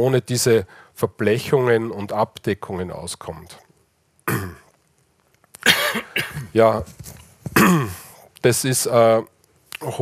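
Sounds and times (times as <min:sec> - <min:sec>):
man clearing his throat: 0:04.3 - 0:04.7, 0:05.6 - 0:06.5, 0:07.5 - 0:08.2.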